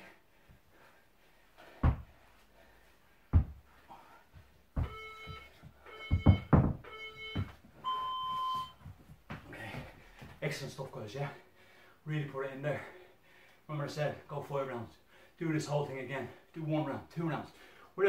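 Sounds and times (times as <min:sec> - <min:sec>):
dumbbell thudding on wooden floor: 0:01.7 - 0:02.2, 0:03.3 - 0:03.7, 0:04.8 - 0:07.6
longer higher timer beep: 0:04.8 - 0:08.8
timer beeps: 0:04.8 - 0:08.8.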